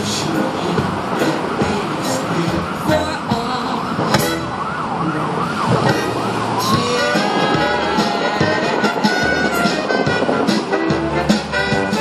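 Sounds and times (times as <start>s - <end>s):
music: 0.0s - 4.6s, 5.9s - 12.0s
emergency vehicle siren: 1.2s - 10.8s.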